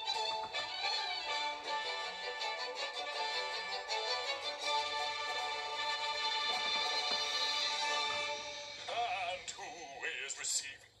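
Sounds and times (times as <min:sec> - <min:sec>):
television music: 0:00.0 - 0:11.0.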